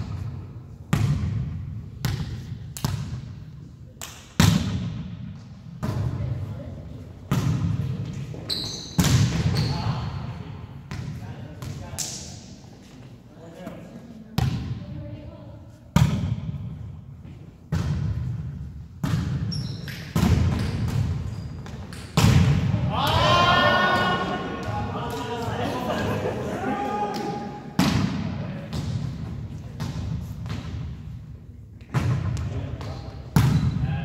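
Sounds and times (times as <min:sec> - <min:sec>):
volleyball smacks echoing: 0:19.0 - 0:25.3, 0:27.1 - 0:29.2
players' voices: 0:22.6 - 0:28.9.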